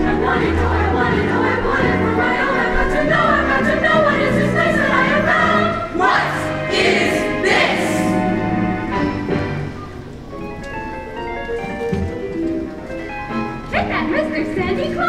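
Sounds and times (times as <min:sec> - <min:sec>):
choir singing with accompaniment: 0:00.0 - 0:09.6.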